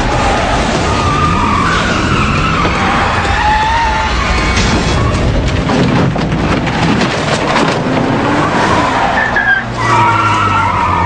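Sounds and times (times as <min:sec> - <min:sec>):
tyres squealing on gravel: 0:00.0 - 0:05.5, 0:08.0 - 0:11.0
car engine under load: 0:00.0 - 0:11.0.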